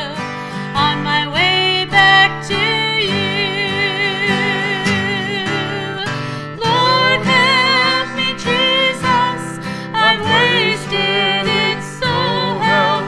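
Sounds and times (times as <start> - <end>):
strummed acoustic guitar: 0.0 - 13.0
woman singing gospel song: 0.8 - 13.0.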